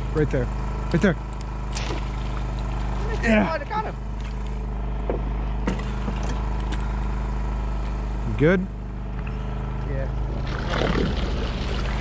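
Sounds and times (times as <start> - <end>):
small engine humming: 0.0 - 12.0
arrow striking water: 1.7 - 2.3.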